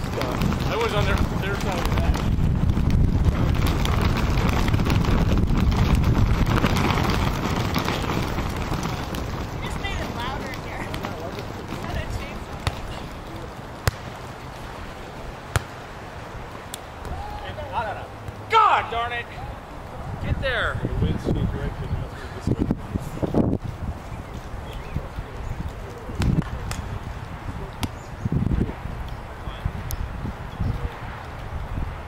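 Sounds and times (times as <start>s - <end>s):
wind rumbling on microphone: 0.0s - 17.6s, 19.4s - 32.0s
volleyball being struck: 13.8s - 14.2s, 15.5s - 15.8s.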